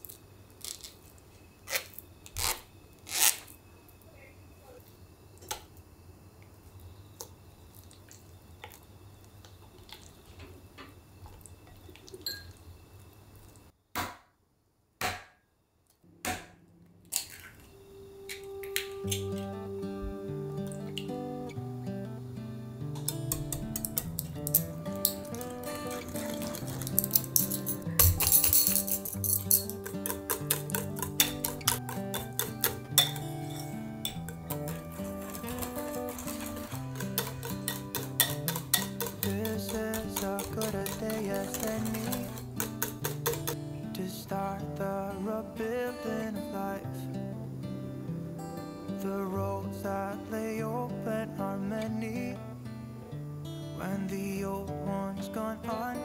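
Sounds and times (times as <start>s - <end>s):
background music: 18.0s - 46.8s
whisk clinking in glass bowl: 25.0s - 43.6s
spatula knocking on bowl: 29.7s - 43.6s.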